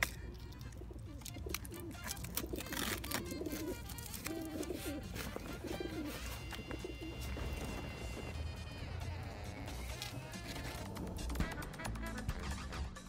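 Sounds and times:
pigeon cooing: 0.0 - 8.3.

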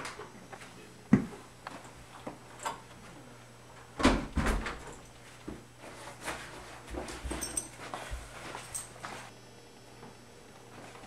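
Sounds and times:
footsteps in hallway: 4.8 - 9.3.

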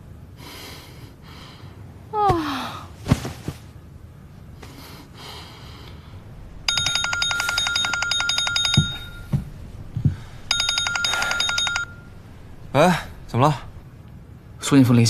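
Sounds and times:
mobile phone ringtone beeps: 6.7 - 9.4, 10.5 - 12.1
soft low thumps: 8.5 - 10.8.

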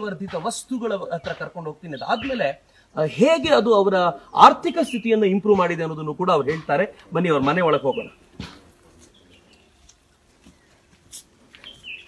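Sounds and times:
high bird chirps: 1.2 - 2.5, 11.6 - 12.0.

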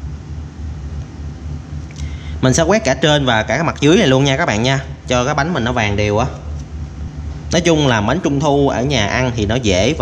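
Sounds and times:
low steady background hum: 0.0 - 10.0.

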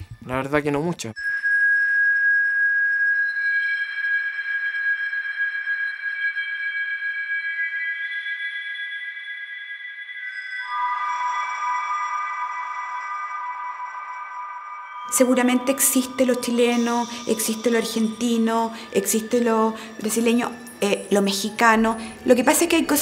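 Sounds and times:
ambient electronic music: 1.3 - 23.0.

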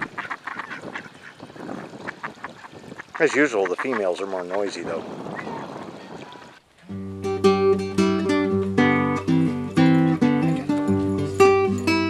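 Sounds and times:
ducks quacking softly: 0.0 - 6.6.

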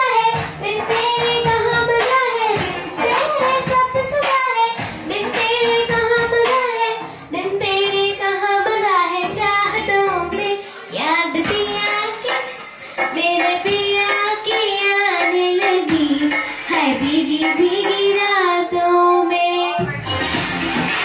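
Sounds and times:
girl singing into a microphone: 0.0 - 19.9.

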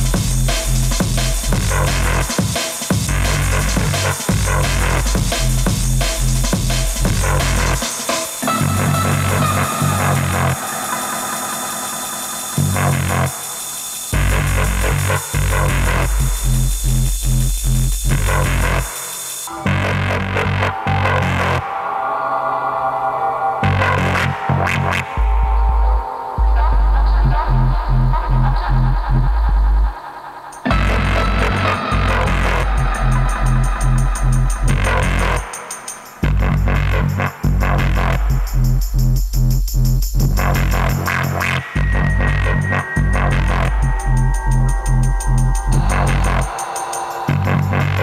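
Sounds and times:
electronic dance music: 0.0 - 17.2, 17.8 - 28.2, 30.5 - 38.8, 40.3 - 48.0
heavy bass line: 0.0 - 18.9, 19.5 - 21.7, 23.6 - 30.0, 30.6 - 35.6, 36.2 - 48.0
fast ticking high percussion: 0.0 - 20.4, 30.5 - 48.0
buzzing synth texture: 40.3 - 48.0.

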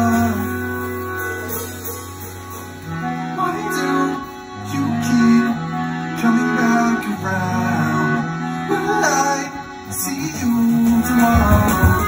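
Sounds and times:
accordion chords: 0.0 - 12.0.

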